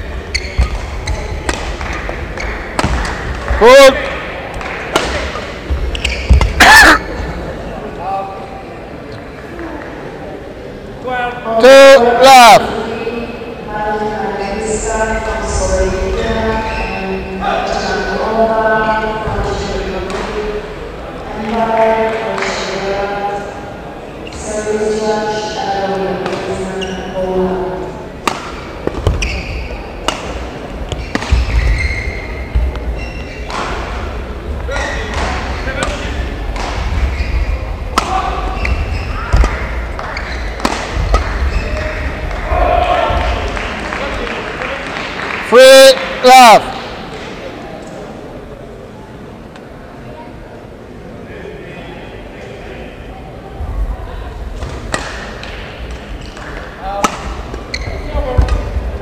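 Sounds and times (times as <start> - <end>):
racket striking shuttlecock: 1.5 - 3.2, 4.6 - 5.4, 28.2 - 29.2, 30.0 - 31.6, 37.9 - 41.4, 56.4 - 57.6.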